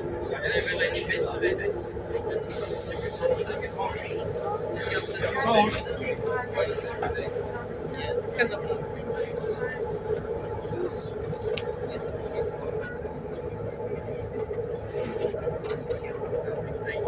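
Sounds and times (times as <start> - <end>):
faint passenger voices: 0.0 - 17.0
train hum: 0.0 - 17.0.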